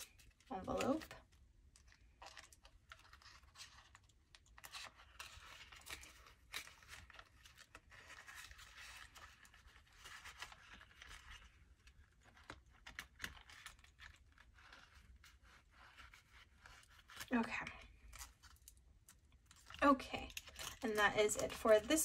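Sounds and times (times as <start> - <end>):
paper banknotes rustling: 20.3 - 22.0.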